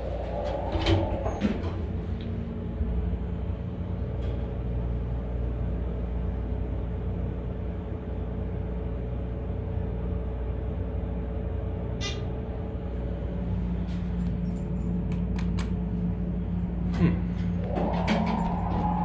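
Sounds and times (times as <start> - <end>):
elevator doors sliding shut: 0.0 - 2.7, 17.4 - 19.0
elevator car humming: 0.0 - 19.0.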